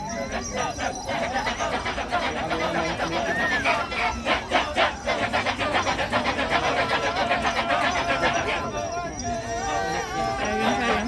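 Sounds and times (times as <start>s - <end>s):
men chanting in chorus: 0.1s - 11.0s.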